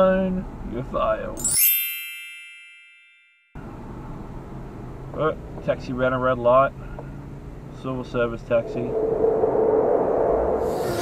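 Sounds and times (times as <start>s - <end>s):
metallic bell ding: 1.4s - 3.6s
car cabin road noise: 3.6s - 11.0s.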